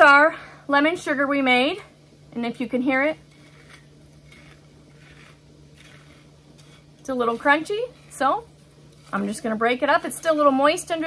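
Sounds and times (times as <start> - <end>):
sugar crystals crunching: 3.2 - 11.0.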